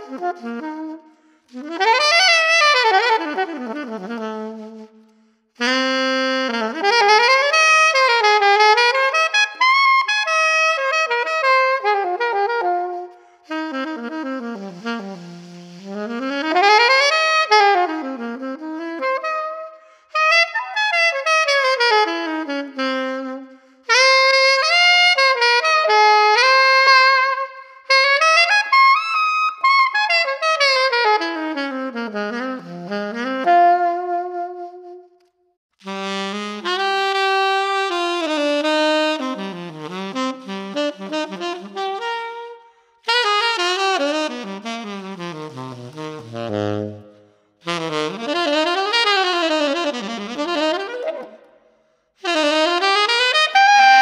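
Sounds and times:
alto saxophone jazz solo: 0:00.0 - 0:54.0.

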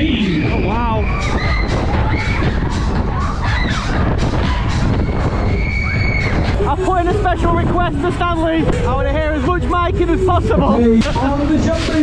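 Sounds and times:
people shouting and screaming: 0:00.0 - 0:08.9
fairground ride music: 0:00.0 - 0:12.0
heavy rumble: 0:00.0 - 0:12.0.

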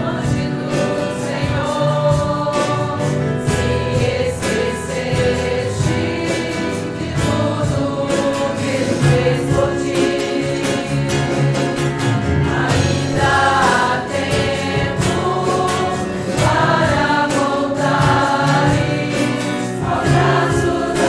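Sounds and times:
church band playing: 0:00.0 - 0:21.0
people singing a hymn: 0:00.0 - 0:21.0.

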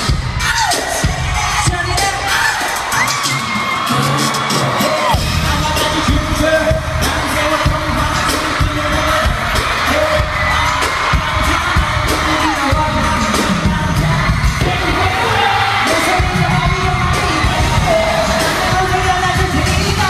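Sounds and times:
audience cheering: 0:00.0 - 0:20.0
loud pop music through speakers: 0:00.0 - 0:20.0.

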